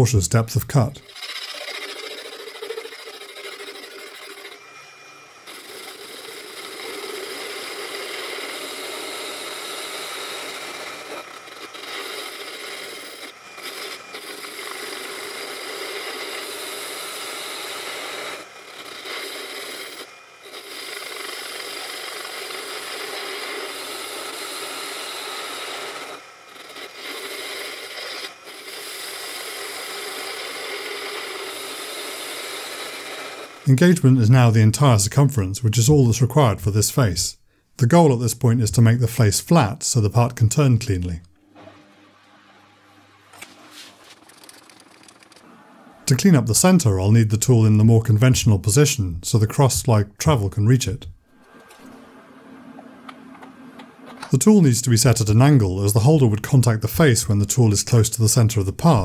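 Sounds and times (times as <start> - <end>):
tool scraping steel: 0.0 - 34.2, 41.6 - 45.5
lathe whirring: 0.8 - 34.1, 41.3 - 46.2, 51.2 - 56.2.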